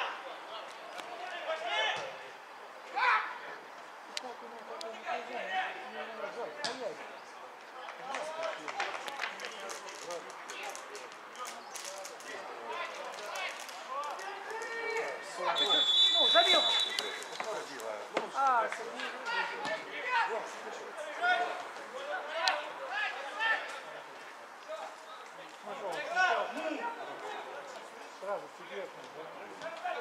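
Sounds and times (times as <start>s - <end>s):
players shouting: 2.8s - 3.6s, 12.5s - 24.1s
referee's whistle blast: 15.5s - 17.3s.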